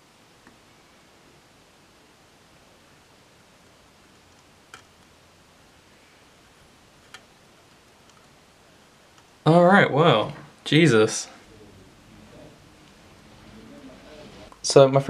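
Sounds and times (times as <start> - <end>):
faint room hiss: 0.0 - 15.0.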